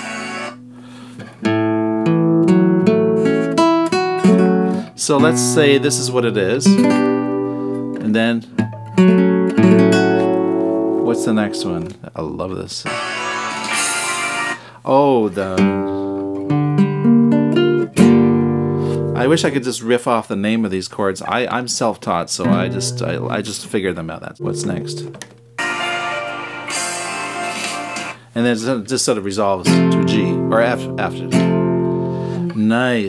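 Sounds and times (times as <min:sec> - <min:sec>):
classical guitar chords and notes: 0:00.0 - 0:12.0, 0:15.6 - 0:19.6, 0:22.4 - 0:23.7, 0:24.4 - 0:28.2, 0:29.6 - 0:32.6.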